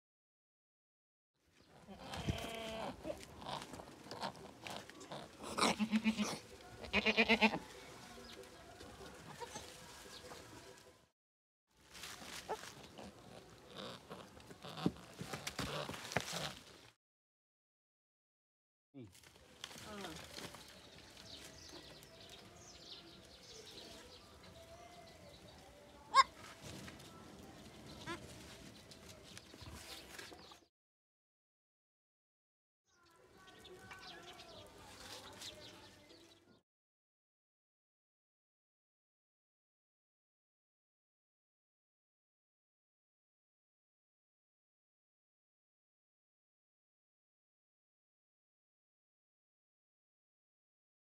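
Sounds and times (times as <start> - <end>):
goats bleating: 1.8 - 7.8, 12.5 - 16.5
crackling in dry straw: 1.9 - 10.9, 11.8 - 16.9, 19.1 - 30.6, 33.3 - 36.2
birds chirping: 19.4 - 26.4.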